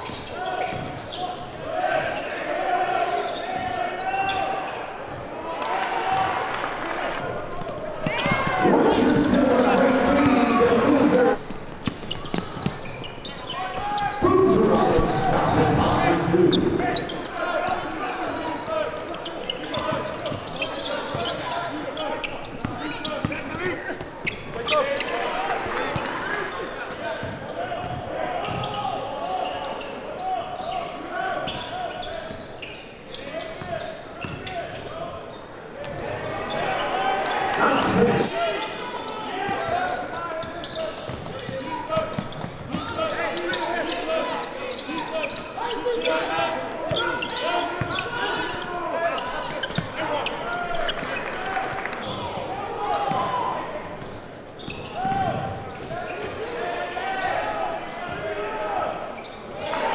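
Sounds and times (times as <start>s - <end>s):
crowd and player voices: 0.0s - 59.9s
basketball bouncing on court: 41.0s - 42.8s.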